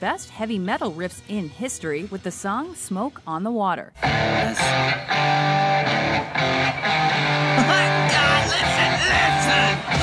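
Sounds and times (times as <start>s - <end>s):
rock music with electric guitar: 4.0s - 10.0s.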